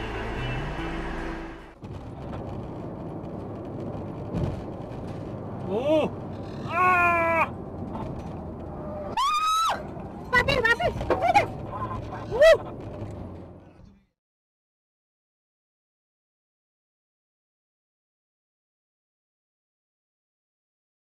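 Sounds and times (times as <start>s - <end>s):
car road and engine noise: 0.0s - 14.2s
person crying out: 6.7s - 7.5s
person exclaiming: 6.7s - 7.5s.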